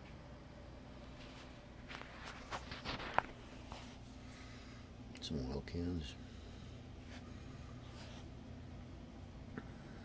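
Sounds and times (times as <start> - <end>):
soft footsteps on indoor floor: 1.1 - 4.1.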